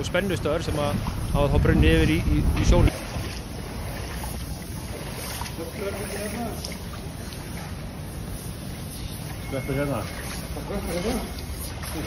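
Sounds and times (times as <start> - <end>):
steady low rumble: 0.0 - 6.0
flood water sloshing on floor: 0.0 - 12.0.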